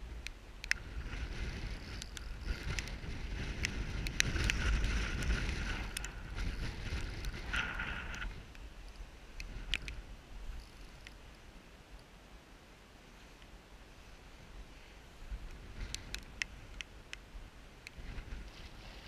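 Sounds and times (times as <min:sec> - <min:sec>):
wind rumble on microphone: 0:00.0 - 0:11.7, 0:13.8 - 0:19.0
fishing reel whirring and clicking: 0:00.7 - 0:08.5, 0:09.4 - 0:11.4.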